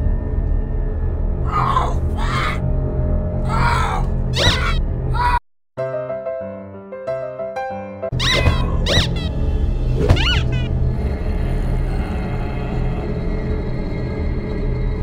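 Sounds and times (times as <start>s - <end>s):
low dark droning score: 0.0s - 5.4s, 8.5s - 15.0s
high squealing cries: 3.5s - 5.4s, 8.2s - 9.4s, 10.2s - 10.7s
piano music: 5.8s - 10.8s.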